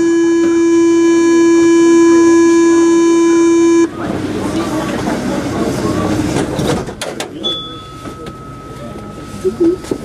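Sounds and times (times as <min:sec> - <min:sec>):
steady high-pitched tone: 0:00.0 - 0:04.0
train running rumble: 0:03.8 - 0:10.0.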